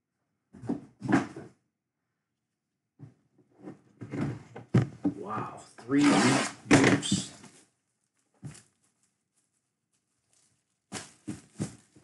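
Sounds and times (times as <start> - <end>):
cardboard box knocks and scrapes: 10.9 - 12.0.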